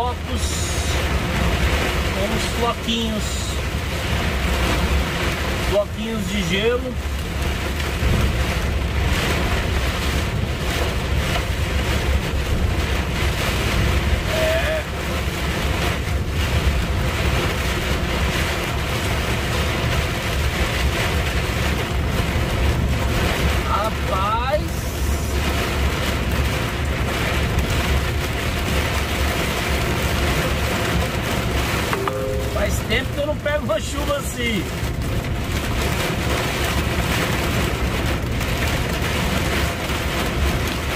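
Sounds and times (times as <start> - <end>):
rain and ice pellets drumming: 0.0 - 40.9
tyres on flooded road: 0.0 - 40.9.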